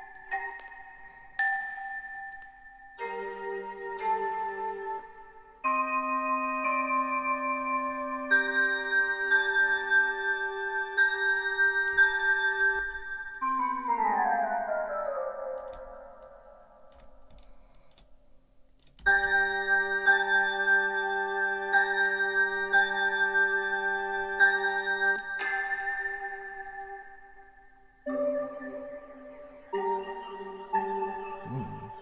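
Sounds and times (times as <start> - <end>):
synth keyboard chords: 0.0 - 17.3, 19.0 - 32.0.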